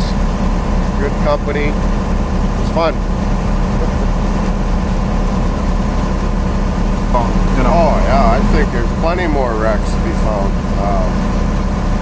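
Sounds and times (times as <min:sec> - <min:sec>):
boat engine droning: 0:00.0 - 0:12.0
sea waves: 0:00.0 - 0:12.0
wind: 0:00.0 - 0:12.0.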